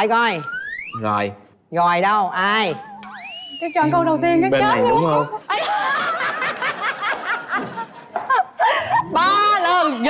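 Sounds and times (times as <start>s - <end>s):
people laughing: 4.6s - 9.4s.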